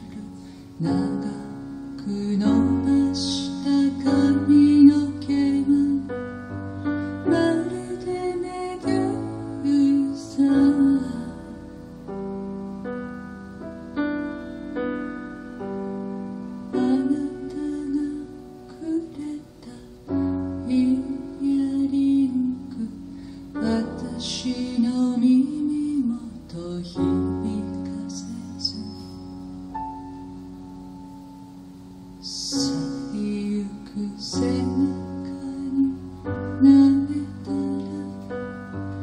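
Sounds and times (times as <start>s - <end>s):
grand piano chords: 0.0s - 39.0s.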